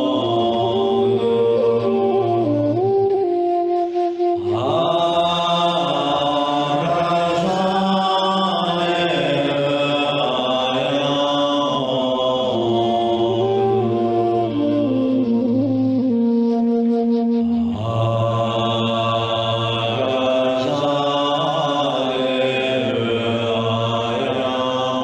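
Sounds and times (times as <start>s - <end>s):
man chanting in held tones: 0.0s - 2.5s, 4.4s - 15.3s, 17.5s - 25.0s.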